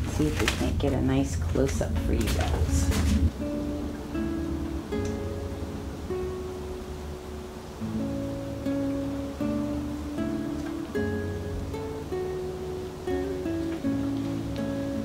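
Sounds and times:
plucked acoustic guitar melody: 0:00.0 - 0:15.0.

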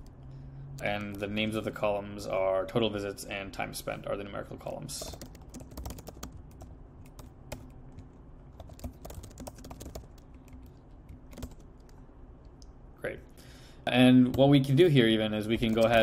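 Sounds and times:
keyboard typing: 0:05.0 - 0:12.0, 0:15.6 - 0:16.0.

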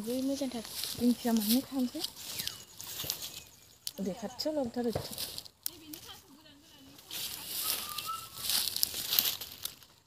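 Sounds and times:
leafy undergrowth rustling: 0:00.0 - 0:10.0
sharp crinkles: 0:04.8 - 0:10.0.

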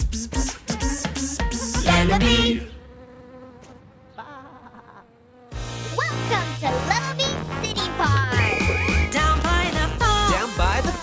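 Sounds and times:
cartoon bee buzzing: 0:00.0 - 0:11.0.

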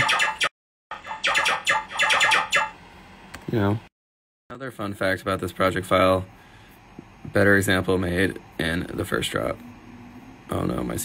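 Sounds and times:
electronic dubstep music: 0:00.0 - 0:00.5.

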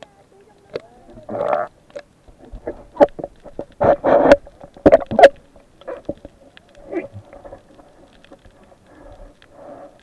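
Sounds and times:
faint underwater clicks: 0:00.0 - 0:10.0.

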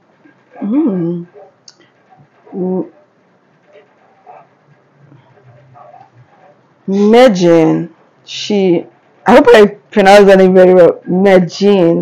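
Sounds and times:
faint low background sounds: 0:00.0 - 0:12.0
woman humming hmm: 0:00.6 - 0:01.3.

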